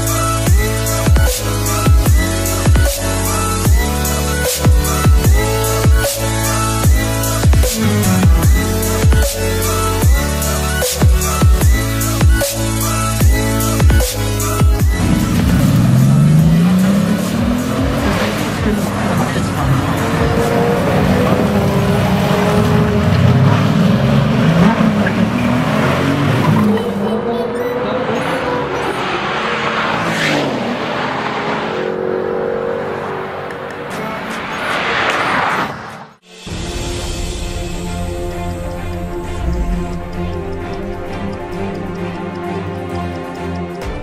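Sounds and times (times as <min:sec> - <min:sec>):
car engine accelerating hard: 0:14.7 - 0:35.6.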